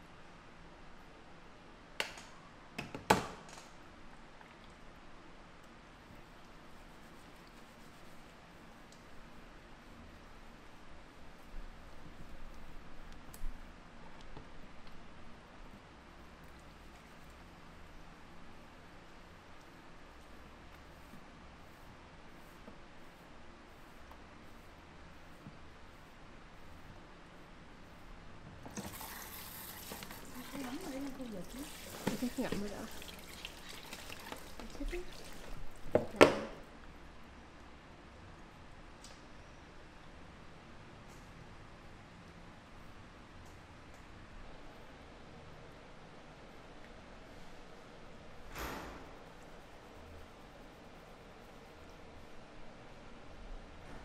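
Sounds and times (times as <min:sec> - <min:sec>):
faint room hiss: 0:00.0 - 0:54.0
tap water splashing into basin: 0:31.5 - 0:36.4.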